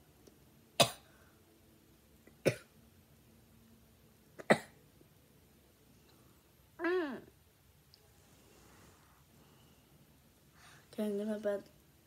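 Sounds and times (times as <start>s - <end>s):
girl coughing: 2.4s - 2.7s.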